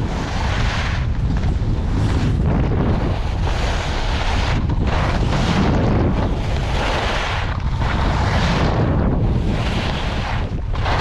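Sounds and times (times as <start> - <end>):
skis scraping over packed snow: 0.0 - 11.0
wind buffeting microphone: 0.0 - 11.0.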